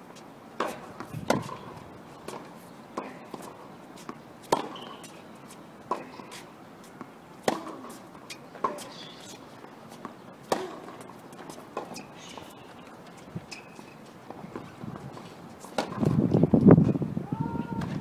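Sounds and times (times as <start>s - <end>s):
rackets striking tennis ball: 0.6s - 16.4s
tennis ball bounces: 0.6s - 16.4s.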